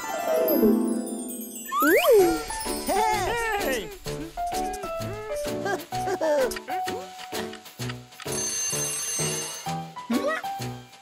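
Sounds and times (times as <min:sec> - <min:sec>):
background music: 0:00.0 - 0:11.0
alarm clock bell ringing: 0:08.3 - 0:09.7.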